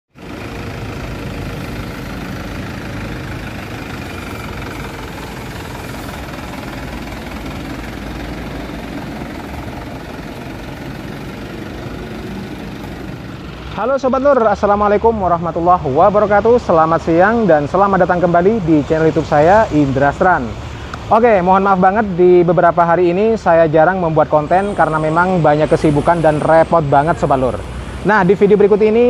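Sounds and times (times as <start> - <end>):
diesel engine running steadily: 0.1 - 29.0.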